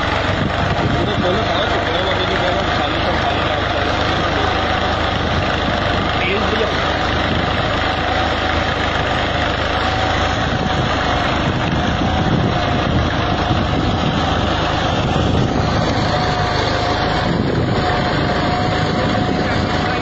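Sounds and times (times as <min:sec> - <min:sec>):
tractor diesel engine running: 0:00.0 - 0:20.0.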